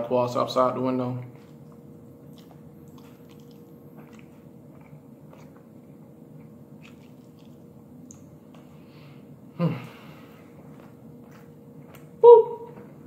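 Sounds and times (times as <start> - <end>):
steady low hum: 0.0 - 13.0
chewing food: 1.2 - 8.9, 9.8 - 13.0.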